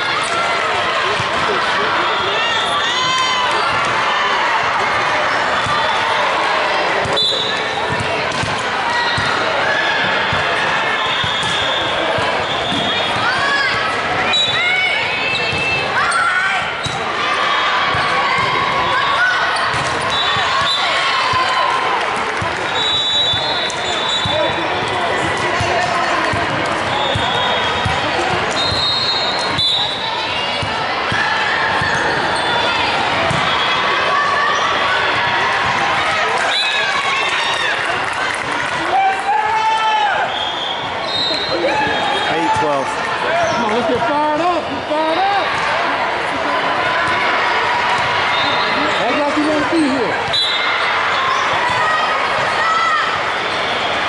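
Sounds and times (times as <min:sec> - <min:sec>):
voices of players and spectators: 0:00.0 - 0:54.0.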